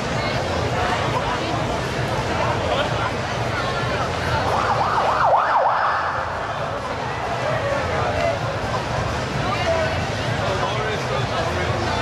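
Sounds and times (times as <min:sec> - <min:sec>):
crowd noise: 0:00.0 - 0:12.0
ambulance siren yelping: 0:04.4 - 0:06.4.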